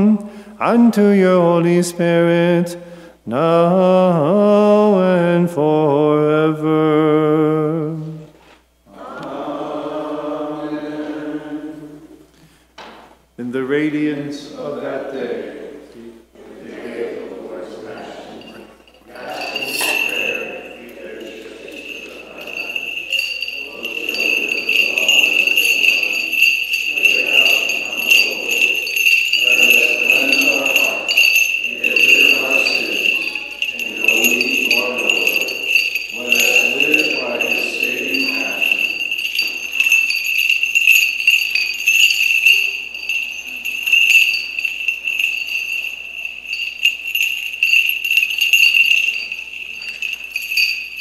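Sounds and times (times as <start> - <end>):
small bells jingling: 17.8 - 51.0
metallic clinks of censer chains: 18.1 - 51.0.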